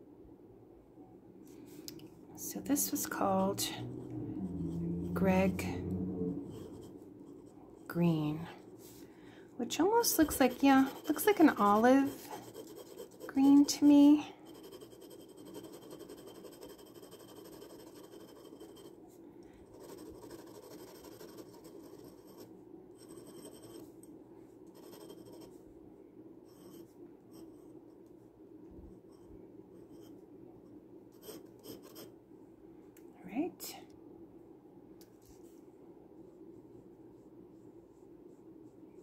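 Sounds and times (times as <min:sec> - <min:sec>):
brief rising voice-like sound: 0:03.6 - 0:07.0
pen nib scratching on paper: 0:10.0 - 0:18.9, 0:19.7 - 0:23.8, 0:24.7 - 0:25.5, 0:31.2 - 0:32.1.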